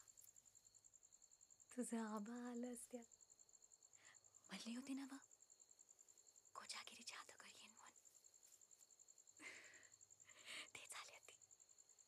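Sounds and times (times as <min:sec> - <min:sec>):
crickets chirping: 0:00.0 - 0:12.0
breathy whispering: 0:06.5 - 0:08.0, 0:09.4 - 0:11.5.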